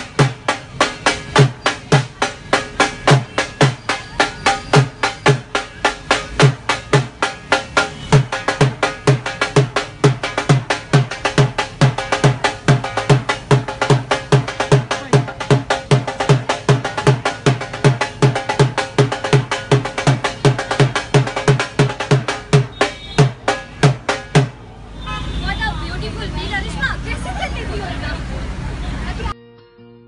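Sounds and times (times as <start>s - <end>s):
barrel drum beaten with sticks: 0.0s - 24.6s
voices: 0.0s - 29.4s.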